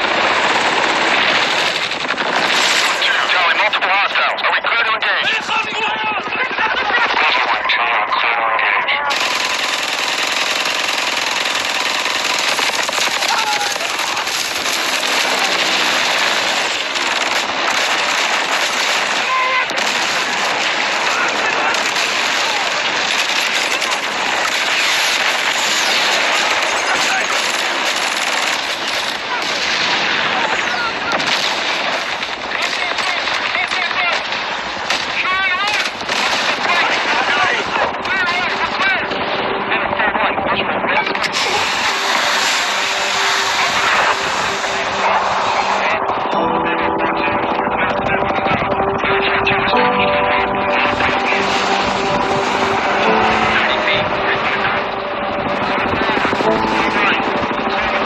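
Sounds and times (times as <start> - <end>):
automatic gunfire: 0.0 - 3.3, 9.1 - 30.3, 31.1 - 37.0
held music notes: 37.9 - 58.0.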